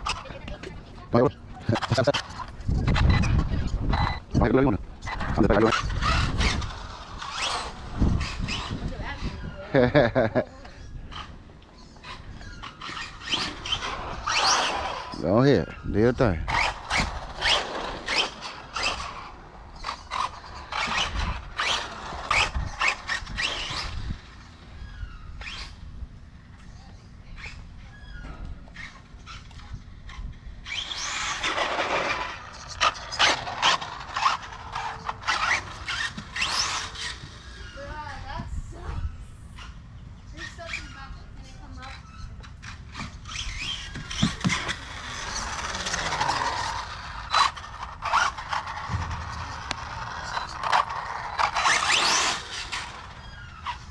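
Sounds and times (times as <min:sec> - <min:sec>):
electric toy car motor whining: 0:05.0 - 0:09.6, 0:12.0 - 0:25.8, 0:28.8 - 0:38.4, 0:42.1 - 0:53.9
children's voices and squeals: 0:26.6 - 0:31.6, 0:34.4 - 0:47.3.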